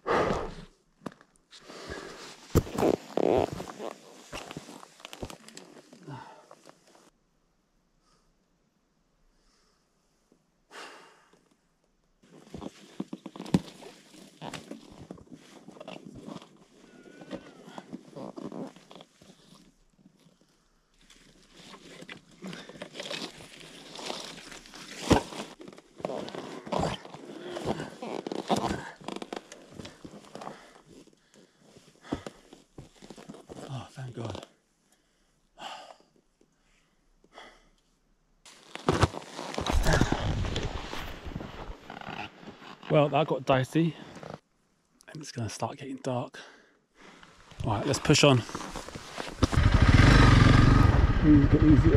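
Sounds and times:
man breathing hard and grunting: 0.0s - 0.7s
boots crunching on loose stones: 38.5s - 42.9s, 47.6s - 50.8s
motorbike knocking and scraping: 48.4s - 51.9s.

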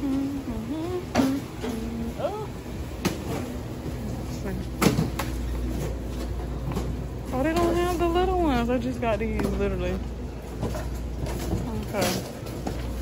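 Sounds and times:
woman humming: 0.0s - 2.6s.

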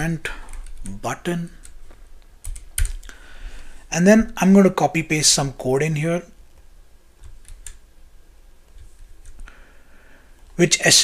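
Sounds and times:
computer keyboard clicks: 2.4s - 3.1s, 7.2s - 7.8s.

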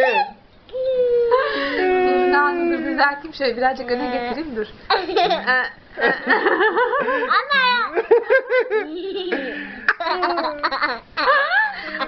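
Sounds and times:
young child laughing: 6.8s - 12.0s.

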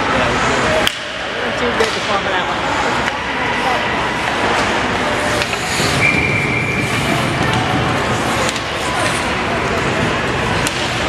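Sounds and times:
ice rink background noise: 0.0s - 11.0s
skating and stick play: 2.8s - 11.0s.

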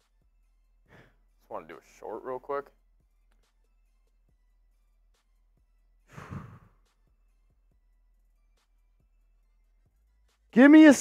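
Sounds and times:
man sighing: 6.1s - 6.7s.

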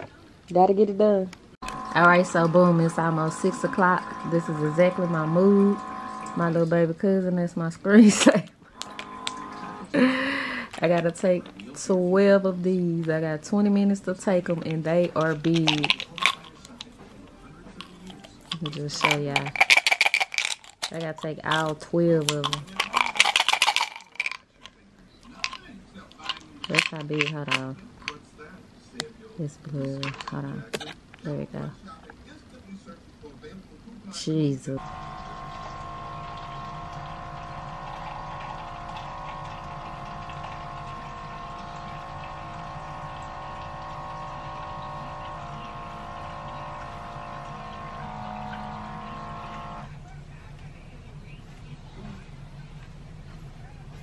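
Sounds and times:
drone of held tones: 1.6s - 6.6s, 34.8s - 49.9s
tablets rattling out of a bottle: 8.8s - 11.9s, 14.2s - 17.0s, 17.7s - 28.2s, 29.7s - 31.0s.

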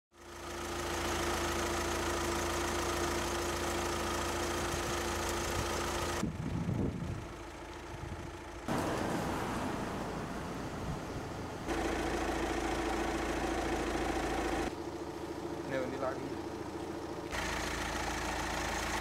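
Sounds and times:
vehicle engine idling: 0.2s - 19.0s
low rumbling: 5.5s - 17.3s
street noise: 6.1s - 17.4s.

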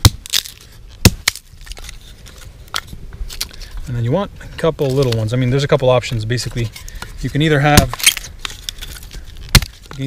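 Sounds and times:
crunching of dry forest litter: 0.0s - 10.0s
kindling sticks clacking on wood: 4.5s - 5.4s.

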